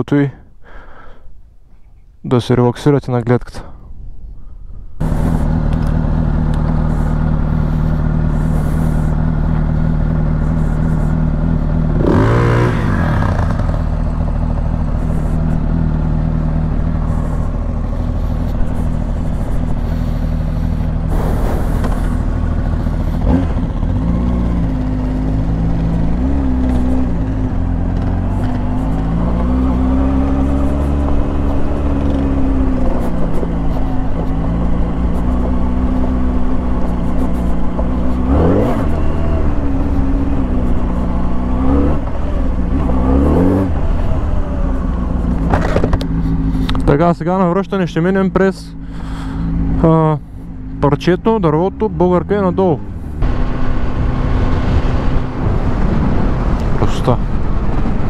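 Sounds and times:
motorcycle engine idling: 4.4 - 42.9, 43.7 - 53.7
motorcycle revving on gravel: 5.0 - 58.0.

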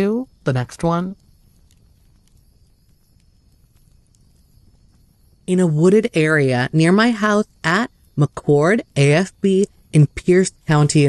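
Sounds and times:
person speaking: 0.0 - 1.2, 5.5 - 11.0
soft ticks: 1.1 - 5.1.

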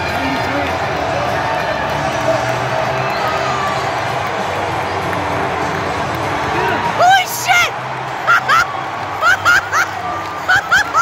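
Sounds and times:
crowd cheering and shouting: 0.0 - 11.0
music playing: 0.0 - 11.0.

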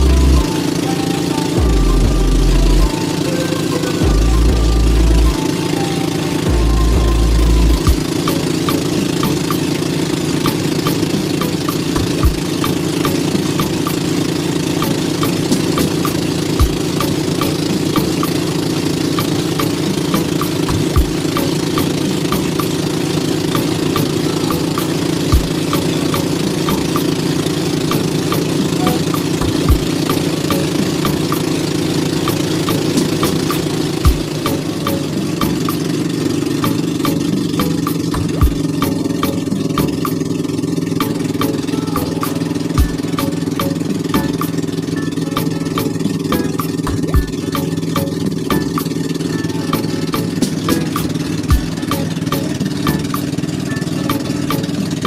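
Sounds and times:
motor engine running: 0.0 - 55.0.

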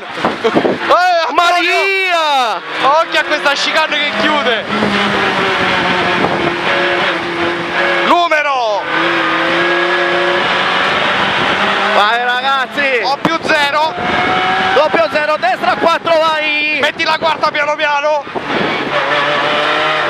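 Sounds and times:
rally car engine: 0.0 - 20.0
raised voices: 0.4 - 6.8.

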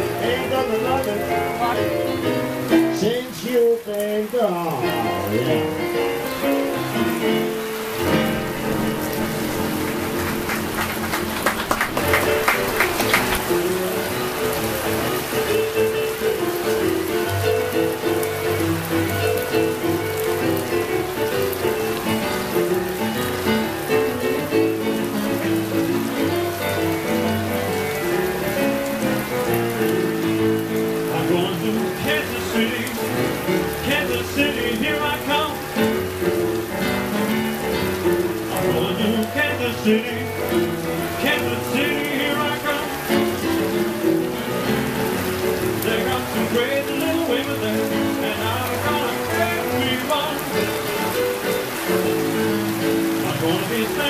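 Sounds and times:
boogie-woogie piano duet: 0.0 - 54.0
rain hiss: 0.0 - 54.0.

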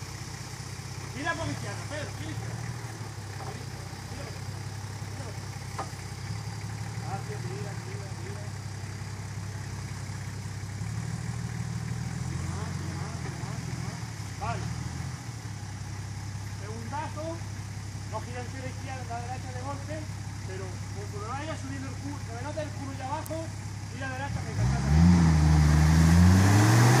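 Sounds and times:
engine running at low revs: 0.0 - 27.0.

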